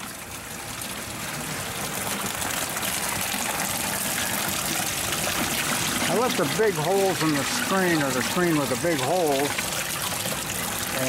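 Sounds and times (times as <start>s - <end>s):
liquid running through screen: 1.0s - 11.0s
sludge pouring and splashing: 1.4s - 11.0s.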